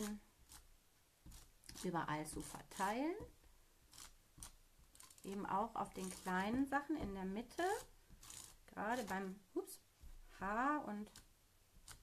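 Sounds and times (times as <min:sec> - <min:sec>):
glue applicator scraping card: 0:00.0 - 0:03.0, 0:03.9 - 0:06.5, 0:07.6 - 0:09.2, 0:11.1 - 0:12.0.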